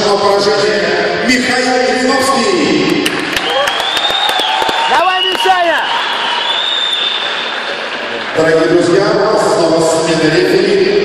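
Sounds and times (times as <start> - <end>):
crowd cheering and applause: 3.0 - 8.6.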